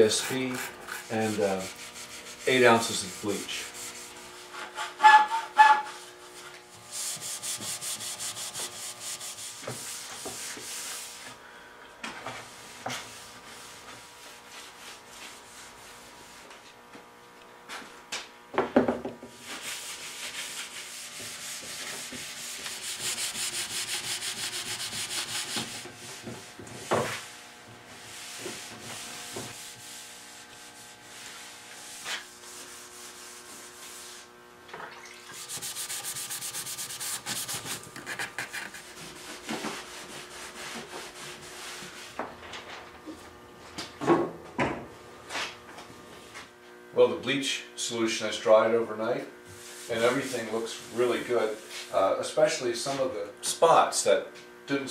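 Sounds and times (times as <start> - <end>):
cloth rag scrubbing wood: 0.0 - 4.2, 5.0 - 11.3, 19.4 - 27.3, 28.0 - 34.3, 35.2 - 42.1, 49.6 - 52.1.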